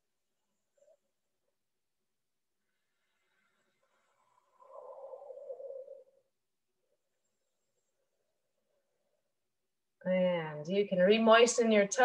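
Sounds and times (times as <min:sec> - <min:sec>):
breathy exhale: 0:02.7 - 0:06.3.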